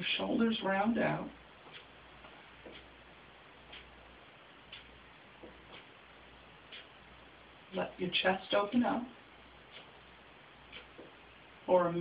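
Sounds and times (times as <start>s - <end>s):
faint regular ticks: 3.6s - 4.0s, 4.7s - 5.9s, 9.6s - 10.0s, 10.6s - 11.2s.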